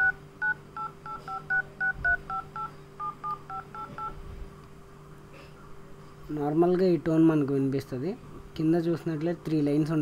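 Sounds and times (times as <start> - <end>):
phone keypad tones: 0.0 - 4.2.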